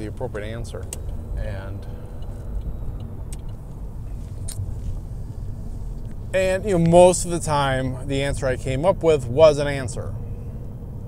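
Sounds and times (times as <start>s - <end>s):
road rumble inside car: 0.0s - 11.0s.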